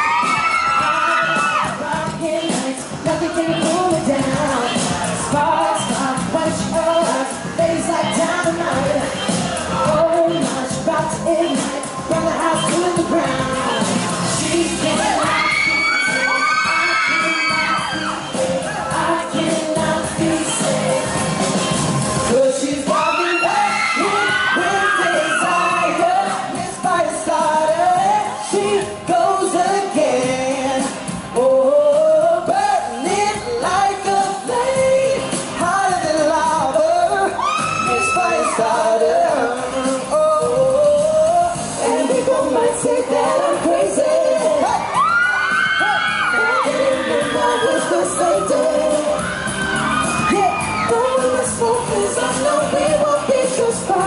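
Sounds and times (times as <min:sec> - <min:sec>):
audience screaming and whooping: 0:00.0 - 0:02.1, 0:11.8 - 0:19.4, 0:20.0 - 0:26.9, 0:37.1 - 0:39.5, 0:43.5 - 0:53.6
male vocal group singing harmony: 0:00.0 - 0:54.0.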